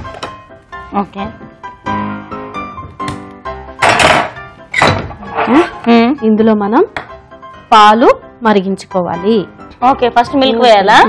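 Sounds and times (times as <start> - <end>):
background music: 0.0 - 11.0.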